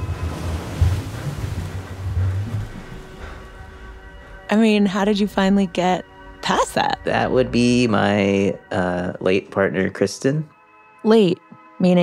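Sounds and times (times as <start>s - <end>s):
ocean surf rushing: 0.0s - 4.4s
soft music bed: 0.0s - 12.0s.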